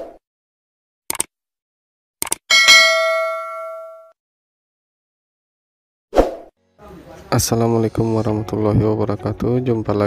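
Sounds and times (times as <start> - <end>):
bright bell ding: 2.5 - 4.1.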